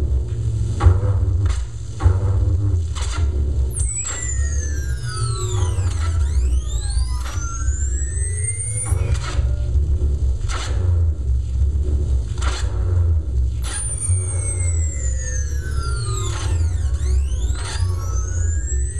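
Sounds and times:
heavy electronic bass: 0.0s - 18.9s
dense gliding tone sweep: 13.6s - 18.9s.

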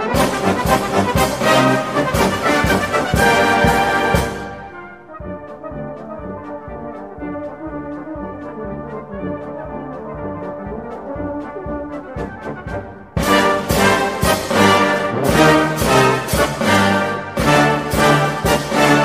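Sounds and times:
brass band playing a march: 0.0s - 19.0s.

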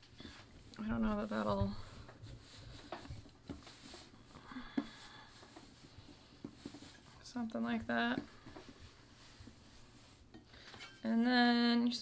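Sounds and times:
hands rubbing dough: 0.0s - 10.7s.

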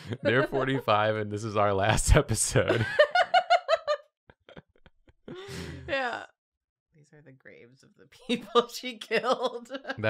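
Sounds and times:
people laughing: 0.0s - 1.4s, 2.4s - 6.0s, 8.3s - 10.0s
person's breathy vocal outburst: 5.3s - 6.0s.

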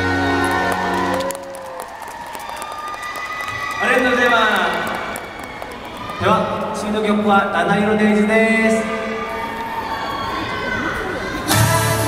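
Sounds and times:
pop song backing track: 0.0s - 1.2s, 11.3s - 12.0s
audience clapping and cheering: 0.0s - 7.3s, 9.4s - 10.6s.

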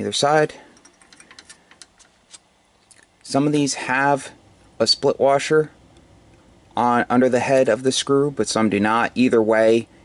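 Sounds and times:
screwdriver clicking on metal screws: 0.8s - 2.4s.

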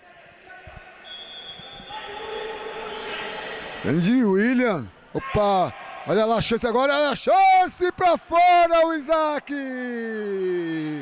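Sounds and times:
players calling out: 1.0s - 4.3s.

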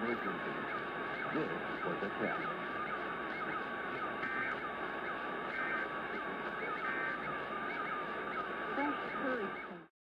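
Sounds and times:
radio static hiss: 0.0s - 9.9s
short digital data bursts: 0.0s - 9.9s.

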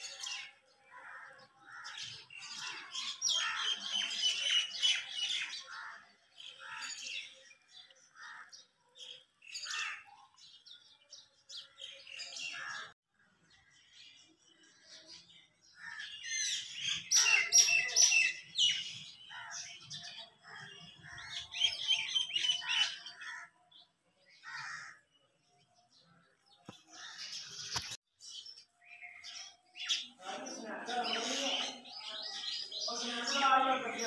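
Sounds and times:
small birds chirping: 0.0s - 34.0s
person speaking: 30.2s - 31.8s, 32.9s - 34.0s.

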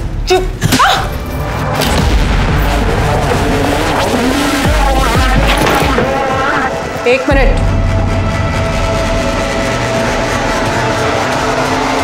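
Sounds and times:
dramatic background score: 0.0s - 12.0s
deep low drone: 1.2s - 12.0s.

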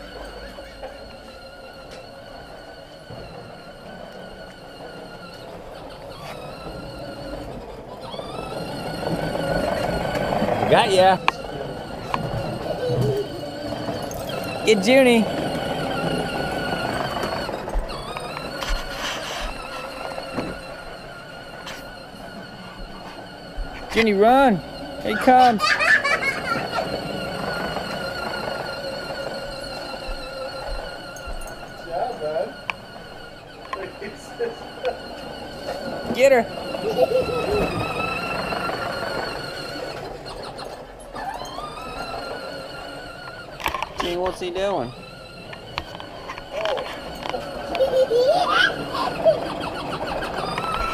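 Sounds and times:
toy tractor electric motor whine: 0.0s - 50.9s.

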